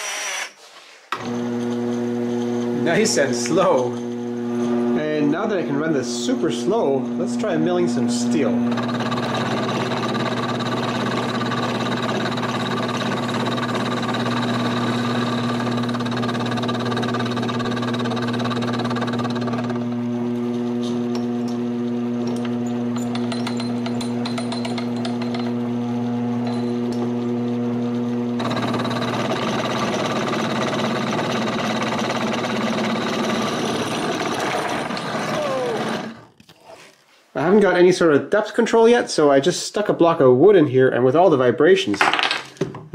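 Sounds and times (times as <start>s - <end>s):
milling machine cutting steel: 6.3s - 36.3s.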